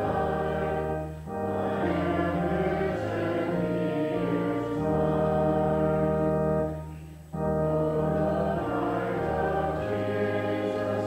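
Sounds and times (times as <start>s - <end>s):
congregation singing a hymn: 0.0s - 11.0s
organ chords: 0.0s - 11.0s.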